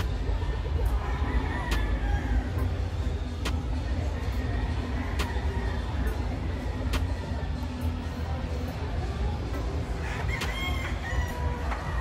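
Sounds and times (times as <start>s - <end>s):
rooster crowing: 10.0s - 11.8s.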